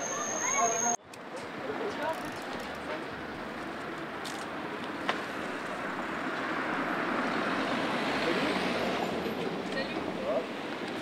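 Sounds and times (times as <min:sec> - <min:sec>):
vehicle passing: 0:02.8 - 0:10.8.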